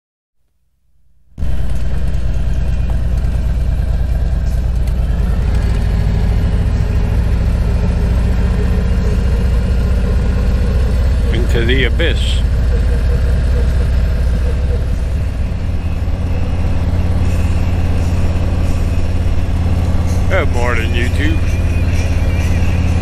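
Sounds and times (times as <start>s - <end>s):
motorcycle engine rumbling: 1.4s - 23.0s.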